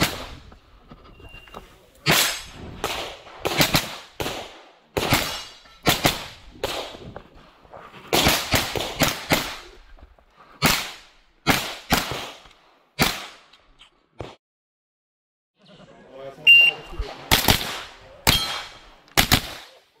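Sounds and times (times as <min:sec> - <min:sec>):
rapid gunshots with echo: 0:17.2 - 0:19.8.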